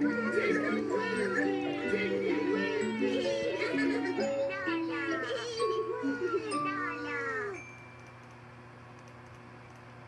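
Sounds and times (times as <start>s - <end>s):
high cartoon voice calling: 0.0s - 7.6s.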